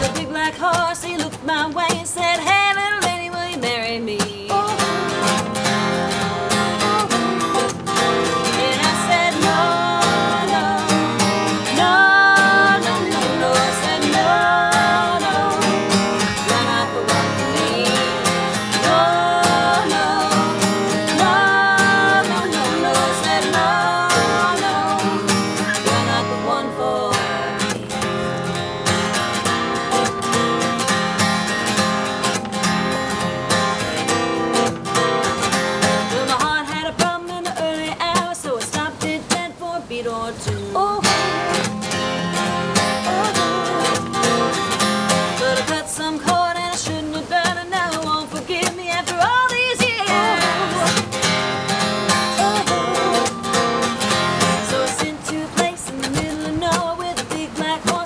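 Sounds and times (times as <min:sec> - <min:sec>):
women singing: 0:00.0 - 0:30.4, 0:35.8 - 0:58.0
acoustic guitars strummed: 0:00.0 - 0:58.0.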